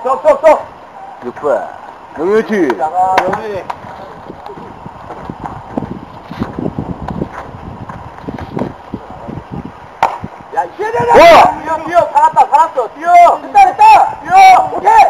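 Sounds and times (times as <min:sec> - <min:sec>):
bat hitting ball crack: 0:10.0 - 0:10.2
players shouting: 0:10.5 - 0:15.0.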